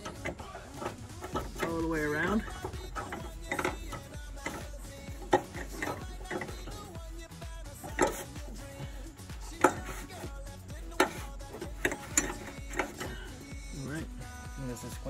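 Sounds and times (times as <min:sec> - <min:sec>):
clicks and knocks on metal: 0:00.0 - 0:07.0, 0:07.7 - 0:08.6, 0:09.4 - 0:13.4.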